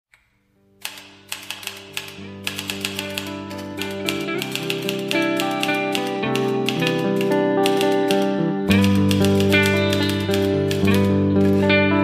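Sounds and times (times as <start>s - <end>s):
typewriter keys clicking: 0.8s - 11.8s
music of held notes: 0.8s - 12.0s.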